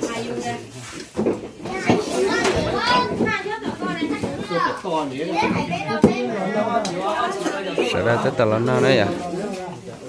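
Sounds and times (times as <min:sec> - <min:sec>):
young child's high voice: 0:01.7 - 0:04.8
people talking: 0:01.7 - 0:10.0.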